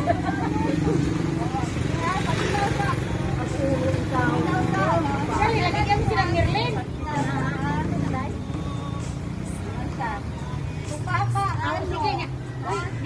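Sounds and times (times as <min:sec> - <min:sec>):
people talking: 0:00.0 - 0:08.8.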